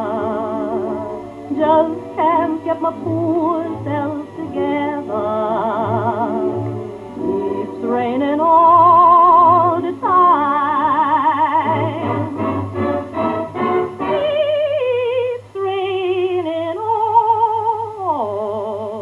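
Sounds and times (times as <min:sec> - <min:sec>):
woman singing slow blues: 0:00.0 - 0:06.5, 0:07.8 - 0:12.3, 0:14.1 - 0:19.0.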